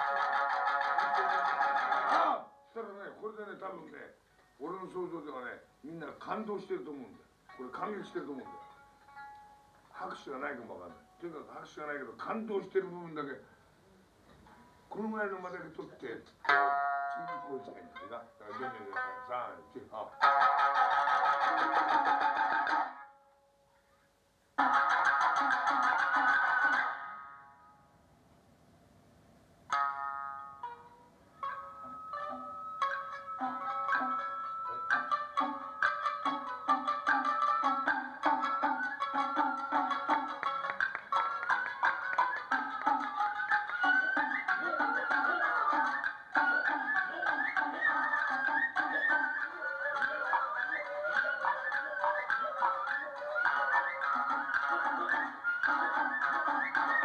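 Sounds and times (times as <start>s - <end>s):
shamisen ensemble playing: 0.0s - 4.0s, 6.2s - 12.9s, 14.9s - 23.5s, 24.6s - 27.8s, 29.7s - 57.0s
flute melody: 30.5s - 57.0s.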